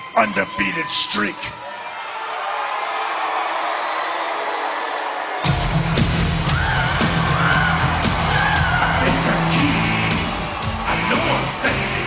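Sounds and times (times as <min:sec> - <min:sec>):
arena crowd noise: 0:00.0 - 0:12.0
loud rock music with heavy beat: 0:05.5 - 0:12.0.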